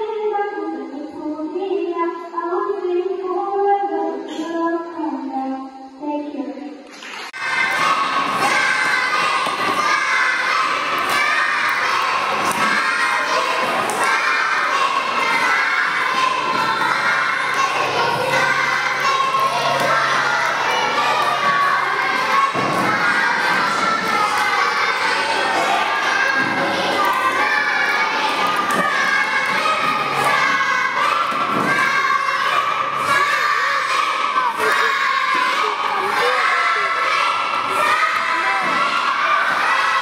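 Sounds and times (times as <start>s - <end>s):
children shouting and cheering: 7.1s - 40.0s
child singing: 7.4s - 40.0s.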